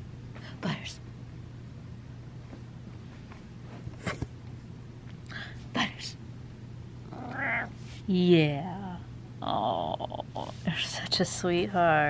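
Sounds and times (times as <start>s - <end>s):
cat meowing: 7.2s - 7.7s.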